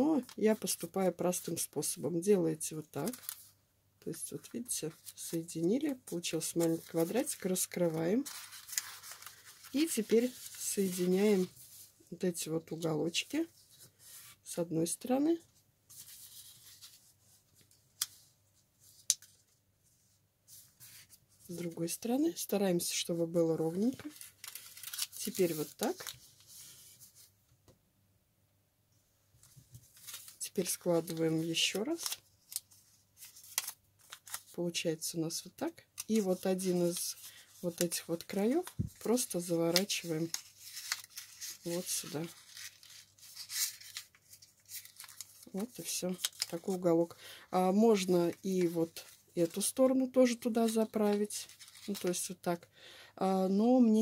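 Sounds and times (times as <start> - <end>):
paper rustling: 2.9 - 3.6, 4.4 - 12.0, 15.9 - 22.0, 23.5 - 27.4, 29.4 - 34.6, 36.0 - 47.1, 47.9 - 52.2.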